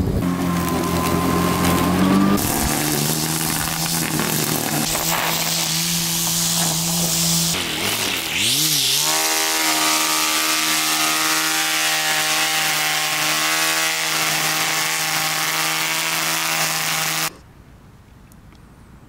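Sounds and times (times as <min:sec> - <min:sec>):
string trimmer motor whine: 0:00.0 - 0:17.4
trimmer line cutting grass: 0:00.0 - 0:17.4.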